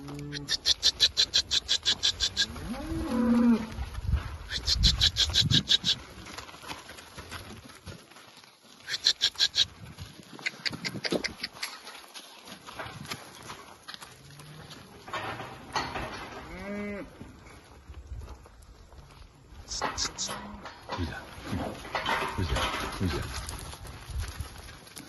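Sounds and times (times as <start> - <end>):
cattle mooing: 0.0 - 3.8
person making sharp calls: 0.3 - 2.5, 4.5 - 6.0, 8.9 - 9.7.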